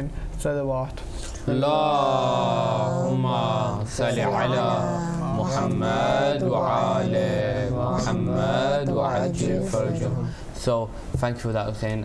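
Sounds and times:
breaths: 0:00.1 - 0:00.4, 0:01.0 - 0:01.5, 0:10.2 - 0:11.2
man chanting: 0:01.4 - 0:10.9.

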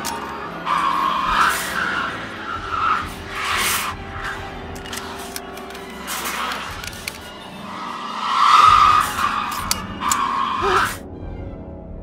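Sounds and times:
sharp clicks: 0:04.7 - 0:07.4
loud screech: 0:07.5 - 0:11.0.

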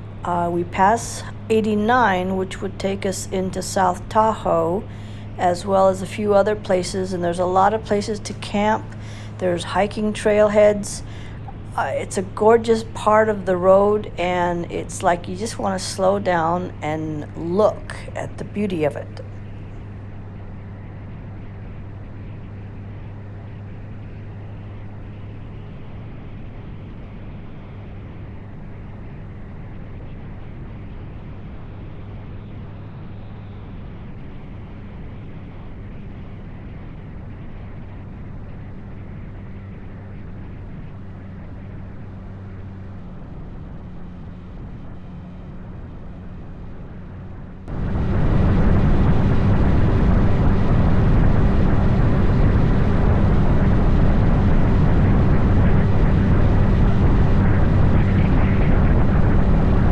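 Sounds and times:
road and wind noise: 0:00.0 - 0:59.9.

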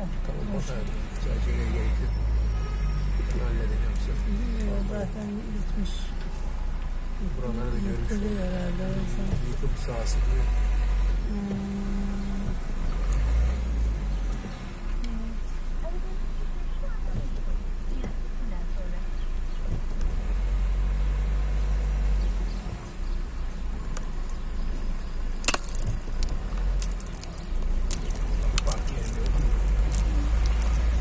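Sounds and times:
car engine and road rumble: 0:00.0 - 0:31.0.

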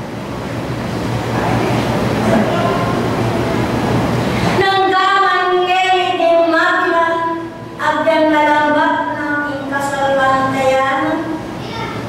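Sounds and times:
steady rumbling noise: 0:00.0 - 0:12.0
faint voice: 0:11.6 - 0:12.0.

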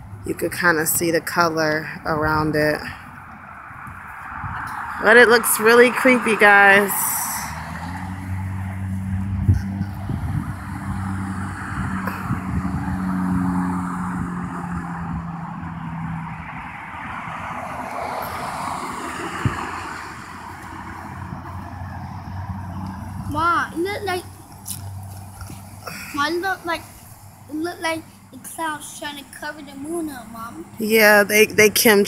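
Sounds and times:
road noise: 0:00.0 - 0:32.0
vehicle engine hum: 0:00.0 - 0:32.0.

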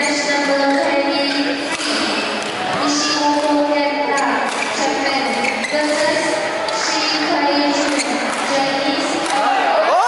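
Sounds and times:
people talking in echoing hall: 0:00.0 - 0:10.0
badminton racket hitting shuttlecock: 0:00.6 - 0:09.6.

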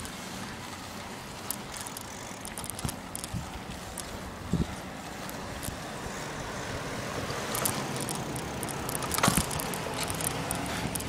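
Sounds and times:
outdoor street noise: 0:00.0 - 0:11.0
light clicks: 0:07.5 - 0:11.0.

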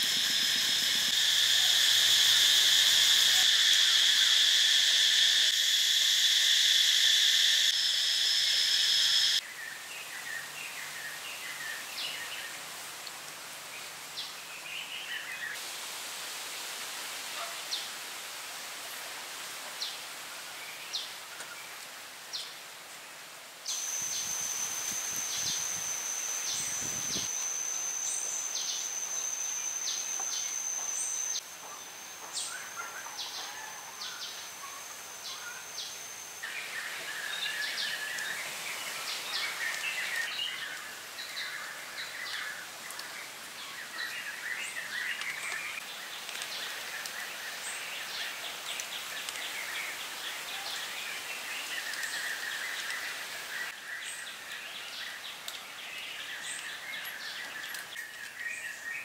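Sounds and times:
high-pitched insect drone: 0:00.0 - 0:09.4, 0:23.7 - 0:41.7.

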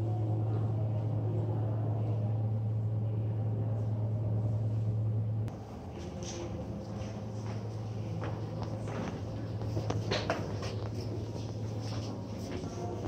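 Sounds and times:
ventilation unit humming: 0:00.0 - 0:13.0.

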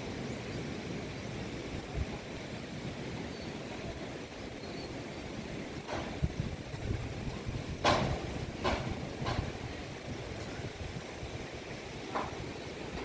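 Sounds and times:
wind rumble on microphone: 0:00.0 - 0:13.0
hammer knocking on roofing sheets: 0:07.8 - 0:09.6.

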